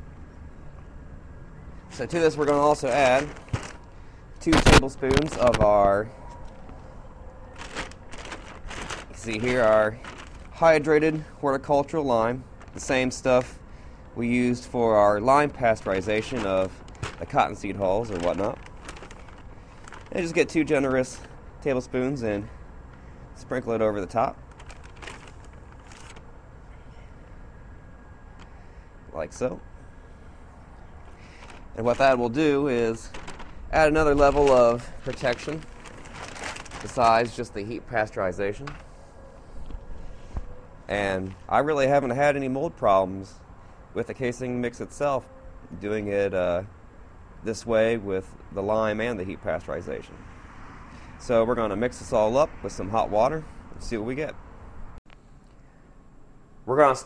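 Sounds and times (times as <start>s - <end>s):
faint low background rumble: 0.0s - 50.1s
plastic scoop rustling in bag: 1.9s - 5.9s, 7.5s - 11.2s, 12.6s - 13.5s, 14.3s - 21.4s, 24.4s - 26.3s, 31.1s - 38.9s.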